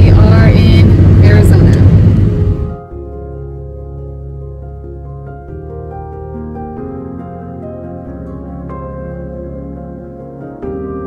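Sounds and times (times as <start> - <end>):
woman talking: 0.0 - 1.9
car driving rumble inside cabin: 0.0 - 2.8.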